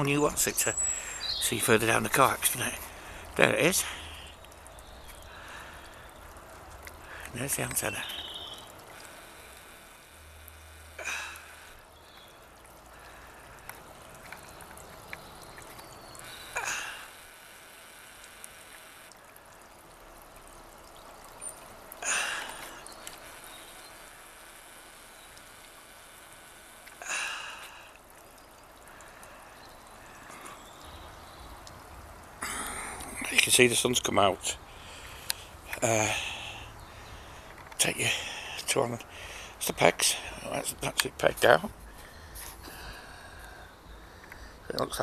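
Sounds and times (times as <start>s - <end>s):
faint background hiss: 0.0s - 45.0s
person breathing: 0.9s - 1.3s, 2.8s - 4.4s, 5.3s - 6.2s, 7.0s - 7.4s, 22.0s - 22.8s, 27.0s - 28.0s, 34.7s - 40.4s, 41.9s - 44.7s.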